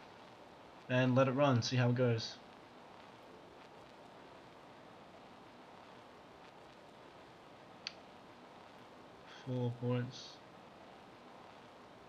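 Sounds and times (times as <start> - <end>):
microphone hiss: 0.0 - 12.0.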